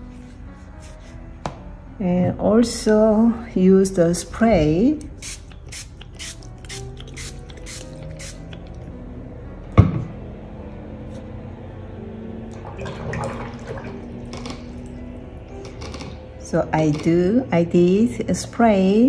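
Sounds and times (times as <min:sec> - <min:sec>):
spray bottle squirting: 0:05.0 - 0:08.9.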